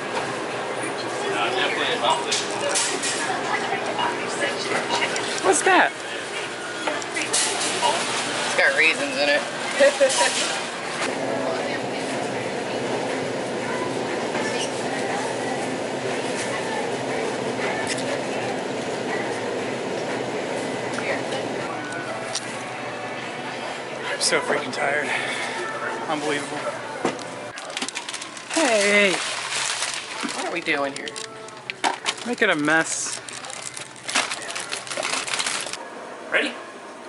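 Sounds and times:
faint voices: 0:00.5 - 0:36.5
shopping cart rattling: 0:27.6 - 0:35.8
snack packets crinkling: 0:27.6 - 0:35.8.

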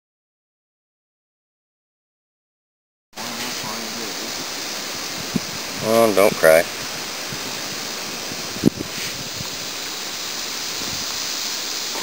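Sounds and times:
wind and water rushing: 0:03.2 - 0:12.0
man's voice: 0:05.8 - 0:06.7.

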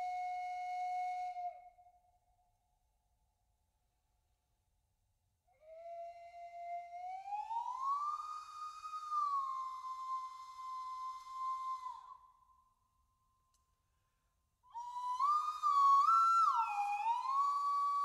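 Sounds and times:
slide whistle glissandi: 0:00.0 - 0:02.0, 0:05.5 - 0:12.7, 0:14.7 - 0:18.0.

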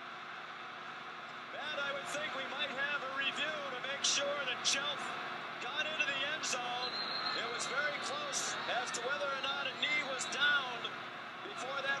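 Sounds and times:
stadium crowd shouting and cheering: 0:00.0 - 0:12.0.

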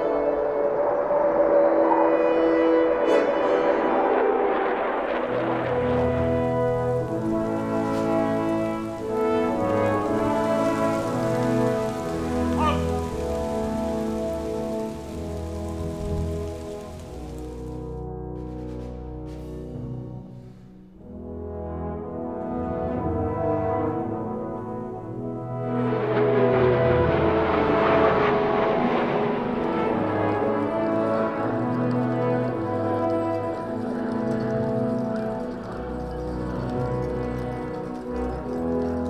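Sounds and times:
military jets flying over: 0:00.0 - 0:19.2, 0:21.0 - 0:39.0
brass band chords: 0:02.0 - 0:39.0
rain falling on pavement: 0:04.2 - 0:18.0, 0:22.9 - 0:39.0.

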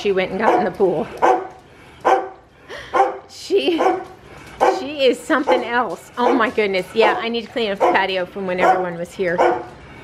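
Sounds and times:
dog barking: 0:00.4 - 0:04.9, 0:07.8 - 0:09.7.

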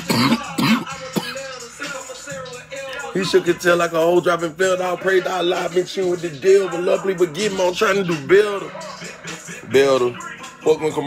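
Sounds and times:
man coughing: 0:00.0 - 0:01.6.

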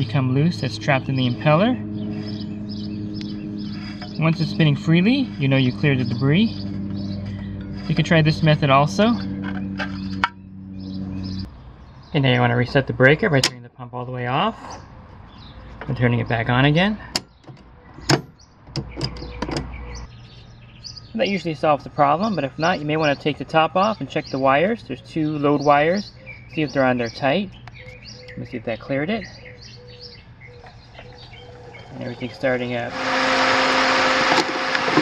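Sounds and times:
pump motor hum: 0:31.0 - 0:35.0
pool pump water rushing: 0:31.5 - 0:35.0.

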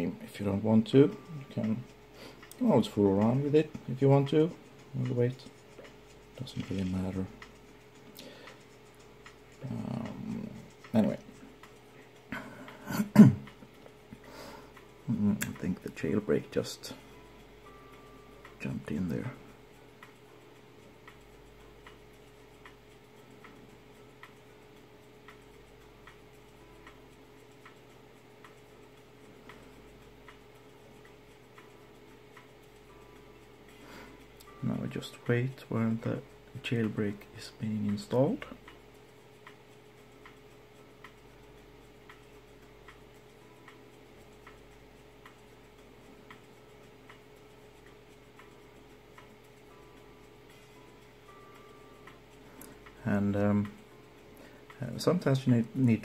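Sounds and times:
faint regular ticking: 0:00.0 - 0:56.0
steady low hum: 0:00.0 - 0:56.0.

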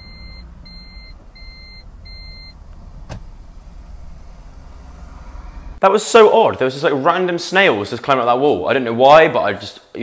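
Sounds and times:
low steady rumble: 0:00.0 - 0:05.8.

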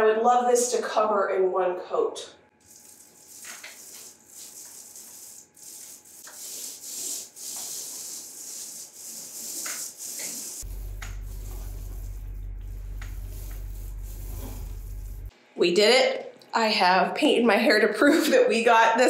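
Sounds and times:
paint roller rubbing on ceiling: 0:02.6 - 0:15.3
steady low hum: 0:10.5 - 0:15.6.

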